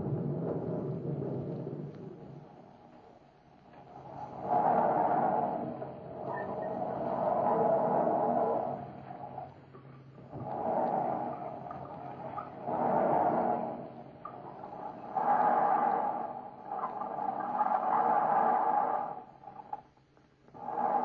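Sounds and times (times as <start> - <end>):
howling wind gusts: 0.0 - 19.8.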